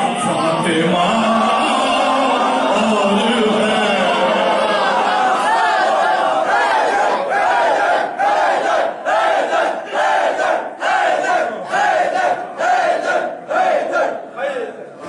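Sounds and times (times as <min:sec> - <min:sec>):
crowd chanting in unison: 0:00.7 - 0:14.9.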